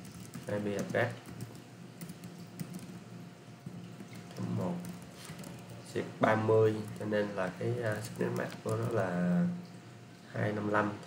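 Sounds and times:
keyboard typing: 0.0 - 3.0, 4.0 - 5.8, 7.8 - 9.0.

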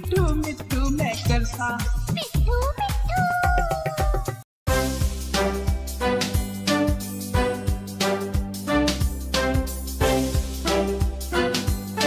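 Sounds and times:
nursery rhyme song with beat: 0.0 - 12.0.

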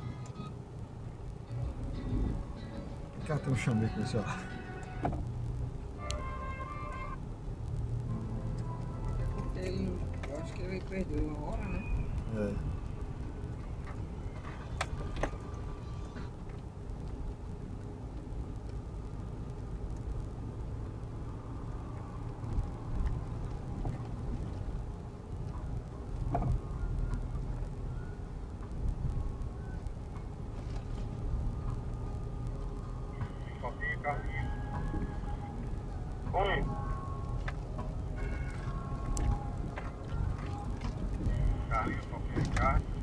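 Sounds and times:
engine and tyre rumble: 0.0 - 43.0.

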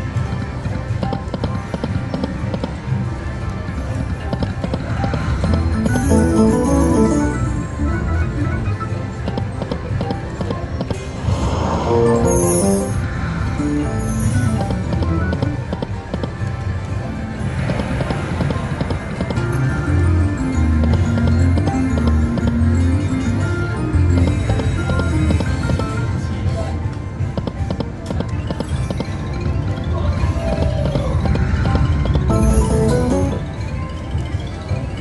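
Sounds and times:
electronic game music: 4.6 - 9.6, 11.4 - 16.3, 17.6 - 26.0, 28.6 - 35.0.

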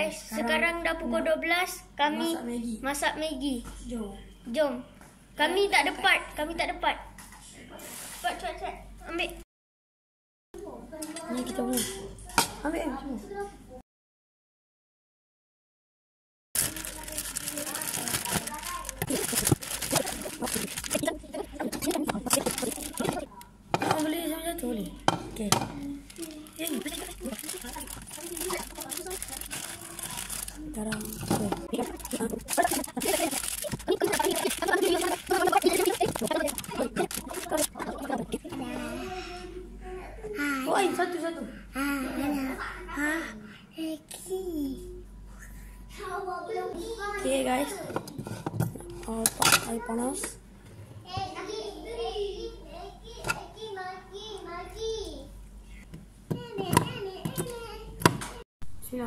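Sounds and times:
plastic packets crinkling: 16.6 - 23.4, 25.8 - 38.4
children chattering: 16.6 - 25.0, 25.6 - 43.4.

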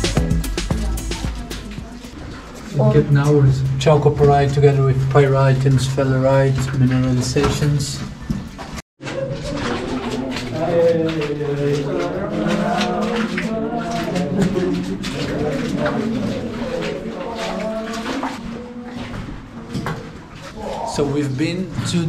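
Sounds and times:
overlapping voices: 0.0 - 6.9, 9.1 - 21.2.

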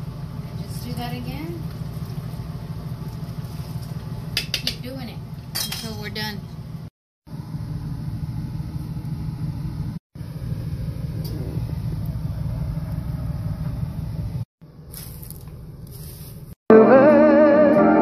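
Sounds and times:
broth boiling hard: 0.0 - 4.4
music: 16.7 - 18.0.

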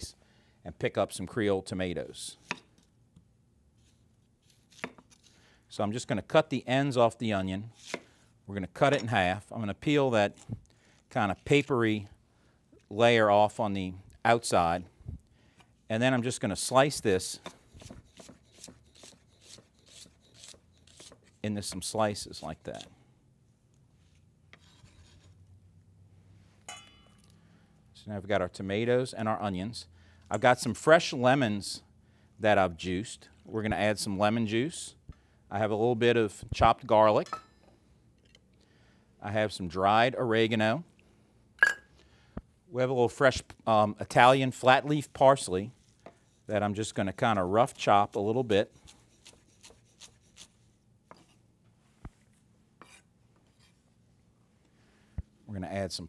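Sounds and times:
onion slices rubbing: 17.6 - 22.9, 47.6 - 51.4.

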